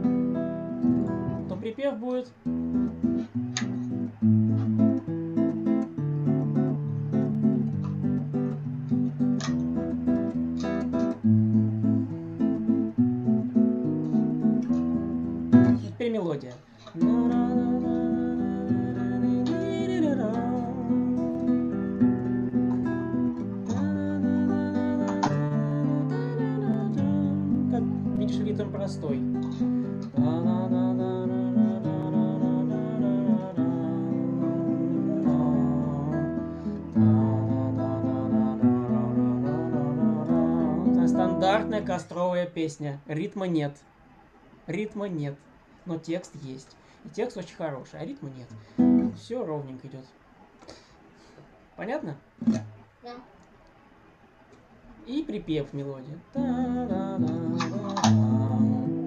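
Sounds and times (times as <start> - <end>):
acoustic guitar playing chords: 0.0 - 42.6, 48.5 - 49.3, 52.4 - 53.3, 55.3 - 59.0.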